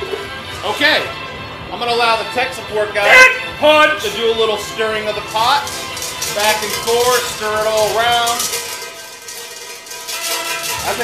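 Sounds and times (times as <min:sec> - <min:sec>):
plastic beads rattling in metal bucket: 0:04.4 - 0:11.0.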